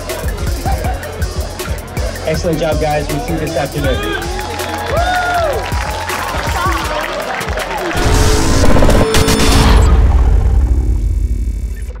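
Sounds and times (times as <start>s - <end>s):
deep bass rumble: 8.0s - 12.0s.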